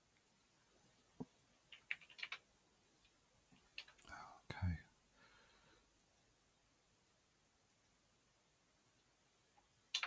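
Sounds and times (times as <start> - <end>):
soft keyboard keystrokes: 1.7 - 2.4
whispered mutter: 4.0 - 4.9.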